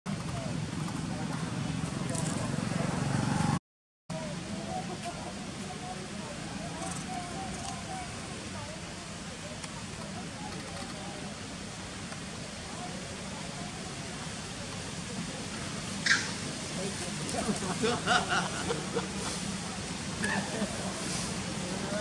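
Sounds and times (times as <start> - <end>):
outdoor background noise: 0.1 - 22.0.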